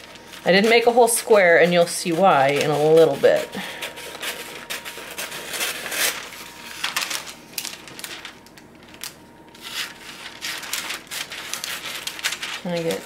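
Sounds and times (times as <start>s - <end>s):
shears snipping paper: 0.0s - 8.2s, 9.0s - 13.0s
paper crinkling: 0.0s - 13.0s.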